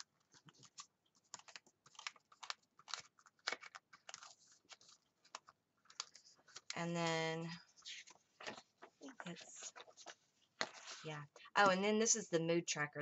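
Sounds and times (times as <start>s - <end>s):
paper pages rustling and clicking: 0.0s - 6.8s, 7.8s - 11.1s.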